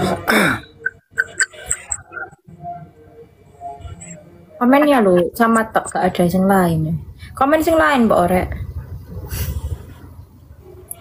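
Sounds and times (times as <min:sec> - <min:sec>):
person clearing throat: 0:00.0 - 0:01.6.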